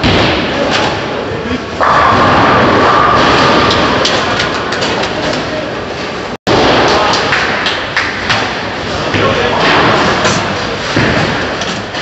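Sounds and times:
busy bowling alley din: 0:00.0 - 0:12.0.

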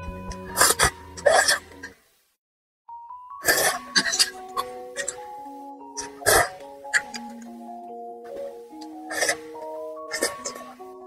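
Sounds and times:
slow melodic background music: 0:00.0 - 0:02.0, 0:02.9 - 0:11.0.

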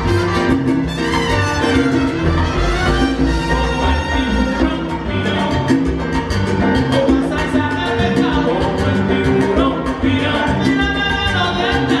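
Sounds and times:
congas: 0:00.0 - 0:12.0
keyboard: 0:00.0 - 0:12.0.

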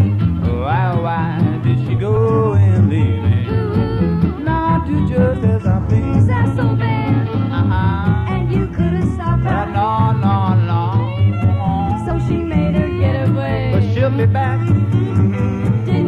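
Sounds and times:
swing band playing: 0:00.0 - 0:16.0.

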